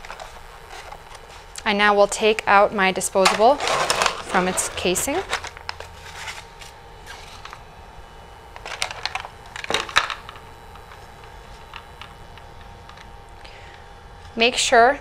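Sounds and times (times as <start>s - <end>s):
plastic tray crinkling and clicking: 8.6s - 11.0s.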